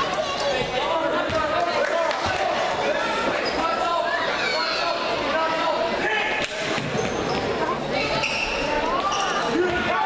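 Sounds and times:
sneaker squeaks on court: 6.8s - 9.8s.

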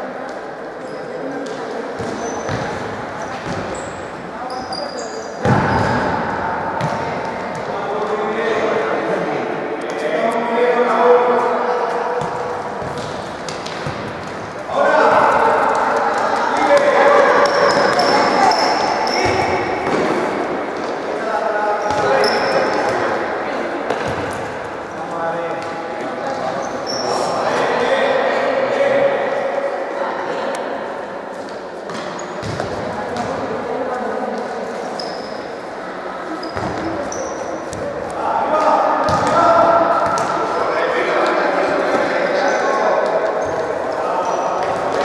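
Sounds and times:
shoes squeaking on floor: 2.0s - 6.1s, 17.2s - 19.6s, 21.8s - 23.0s, 26.4s - 27.3s, 34.8s - 35.6s, 36.3s - 38.0s, 43.3s - 45.0s.

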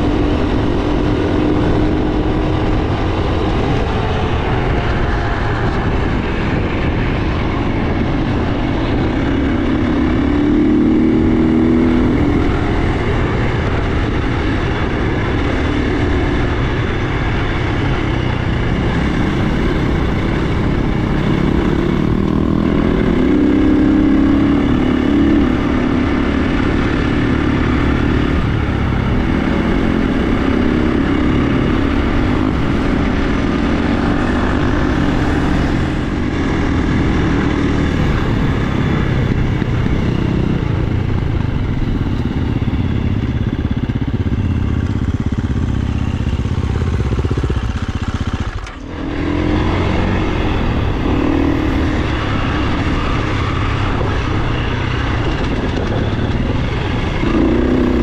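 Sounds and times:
dirt bike engine running: 0.0s - 58.0s.

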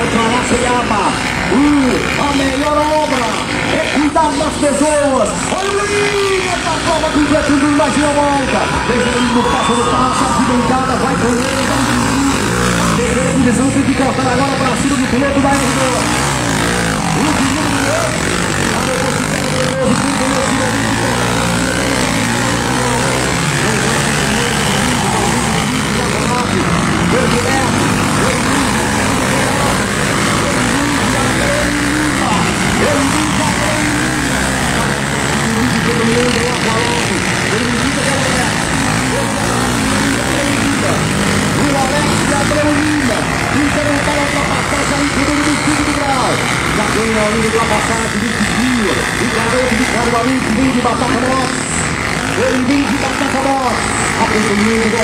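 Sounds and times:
motorcycle engines racing: 0.0s - 55.0s
people's voices: 0.0s - 55.0s.

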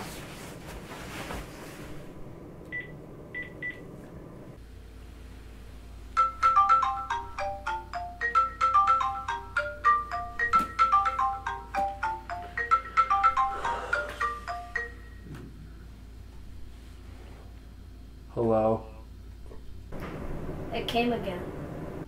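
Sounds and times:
rustle of bedding: 0.0s - 2.2s
marimba ringtone: 6.2s - 15.2s.

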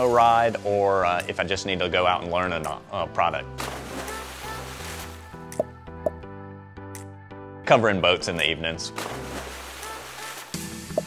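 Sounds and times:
background music: 0.0s - 11.0s
rushing water splash effect: 3.6s - 5.2s, 9.0s - 10.6s.

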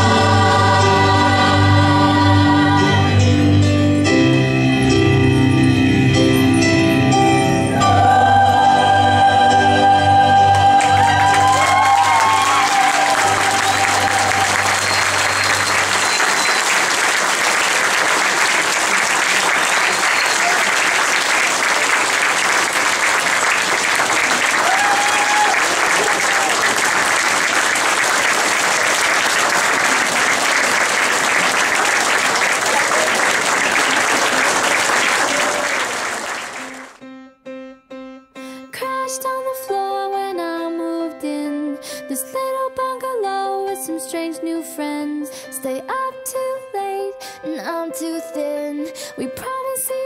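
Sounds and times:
whoops: 10.5s - 16.4s, 24.2s - 26.8s
audience applauding: 10.5s - 37.0s.

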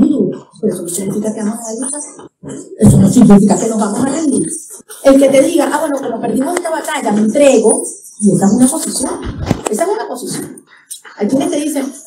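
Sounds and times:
woman speaking into a microphone: 0.0s - 12.0s.

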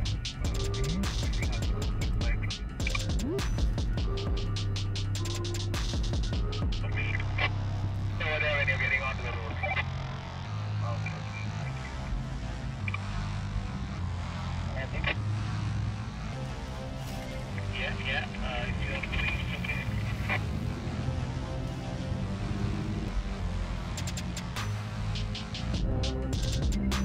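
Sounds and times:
music: 0.0s - 27.0s.

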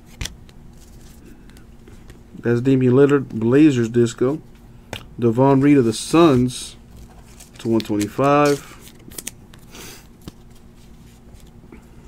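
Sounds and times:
trading cards rustling: 0.0s - 2.2s, 5.0s - 11.6s.

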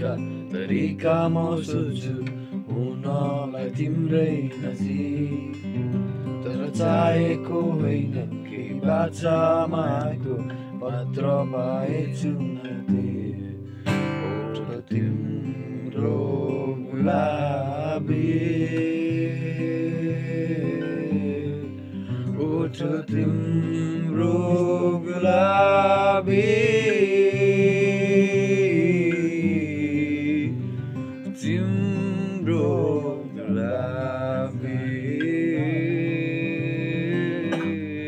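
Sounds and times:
person singing: 0.0s - 5.8s, 6.4s - 38.0s
acoustic guitar picked: 0.0s - 38.0s.

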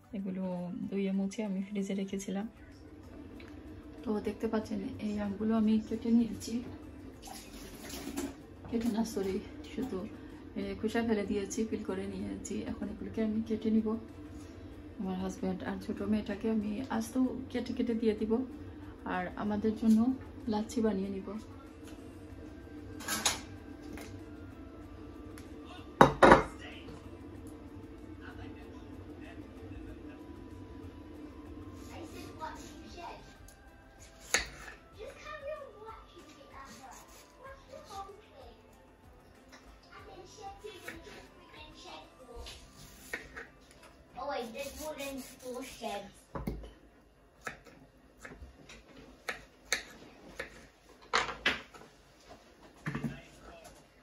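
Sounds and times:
knife and plate clatter: 7.2s - 8.4s, 23.0s - 23.5s.

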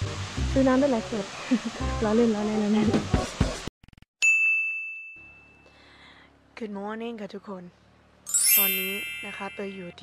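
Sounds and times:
bell-like ding: 4.2s - 5.8s, 8.3s - 10.0s.

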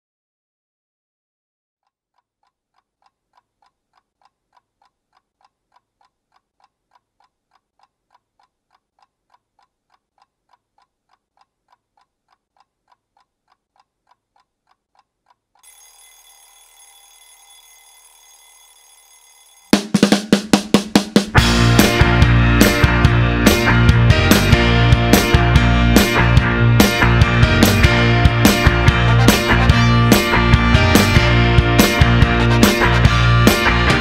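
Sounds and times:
mechanical clock ticking: 2.2s - 19.8s
alarm clock bell ringing: 15.6s - 19.9s.

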